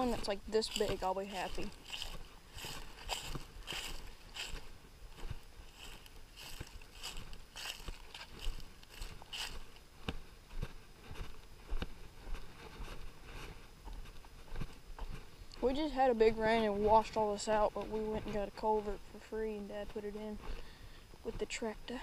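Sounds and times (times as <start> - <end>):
footsteps crunching through dry leaves: 0.0 - 15.3
footsteps scuffing on dirt and gravel: 0.0 - 18.9.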